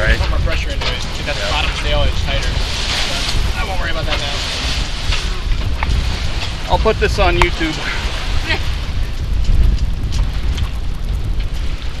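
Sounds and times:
water rushing along hull: 0.0 - 12.0
wind buffeting microphone: 0.0 - 12.0
person laughing: 8.4 - 8.8.

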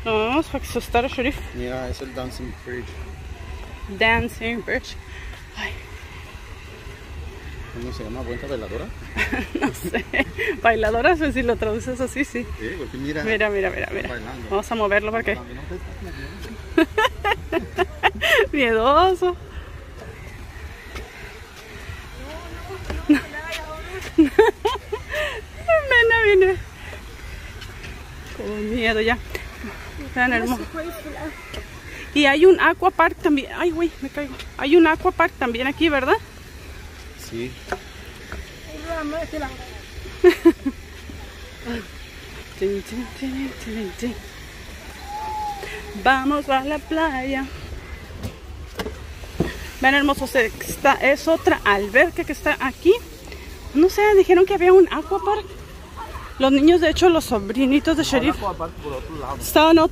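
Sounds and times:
woman speaking: 0.0 - 1.4, 3.9 - 5.0, 9.7 - 12.4, 17.9 - 19.4, 25.2 - 26.7, 28.4 - 36.2, 42.5 - 44.3, 46.0 - 47.5, 49.8 - 53.1, 53.7 - 55.5, 56.4 - 58.4, 59.4 - 59.9
faint voices: 0.0 - 59.9
outdoor background noise: 0.0 - 59.9.

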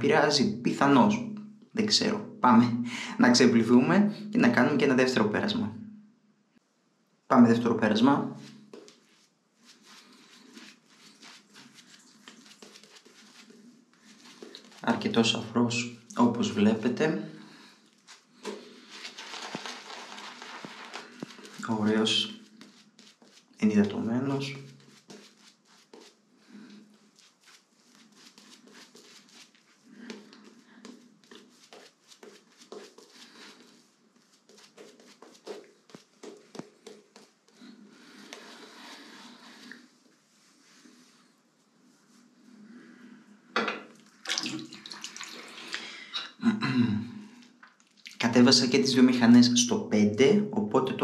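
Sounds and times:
shaving brush wet strokes: 8.7 - 15.0, 17.9 - 39.8
lather bubbles crackling: 8.8 - 15.0, 17.5 - 24.0, 24.6 - 39.7, 44.0 - 46.0.

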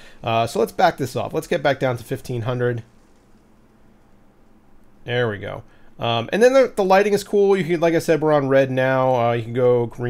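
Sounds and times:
faint low pump hum: 0.0 - 10.0.

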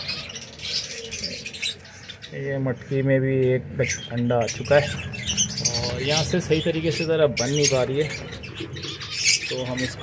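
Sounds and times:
sparrows chirping and twittering: 0.0 - 10.0.

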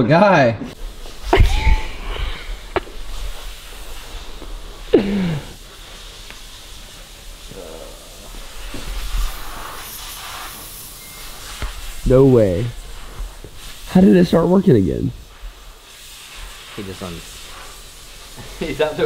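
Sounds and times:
steady hiss: 0.6 - 19.0.

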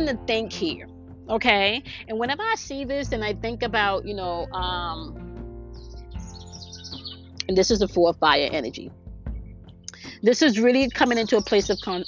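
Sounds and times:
soft background music: 0.0 - 12.0
small birds chirping: 4.1 - 12.0.

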